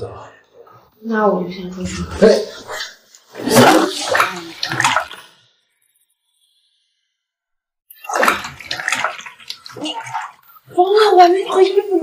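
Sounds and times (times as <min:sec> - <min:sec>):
water splashing in bathtub: 0:02.2 - 0:05.3, 0:07.9 - 0:12.0.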